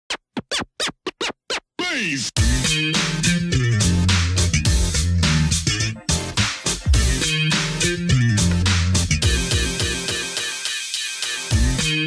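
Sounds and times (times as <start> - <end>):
turntable record scratches: 0.1 - 12.0.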